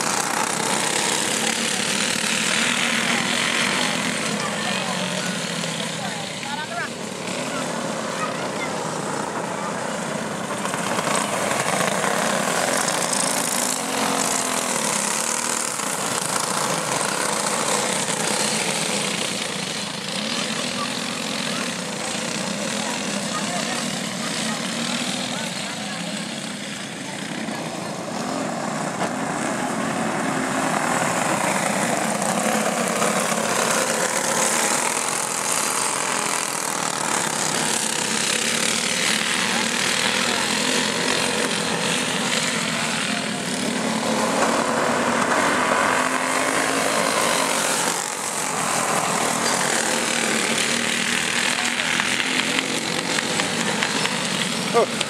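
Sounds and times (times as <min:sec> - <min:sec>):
go-kart engines racing: 0:00.0 - 0:55.0.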